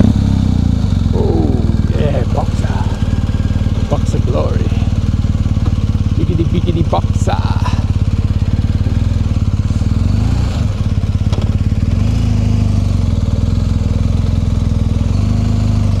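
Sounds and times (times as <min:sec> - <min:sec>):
motorcycle engine idling: 0:00.0 - 0:16.0.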